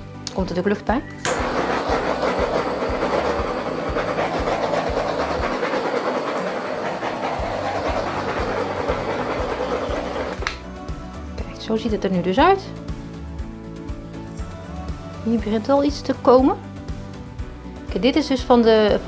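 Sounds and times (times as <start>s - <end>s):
gas torch flame hissing: 1.3s - 10.6s
background music with beat: 6.7s - 11.4s, 12.8s - 15.6s.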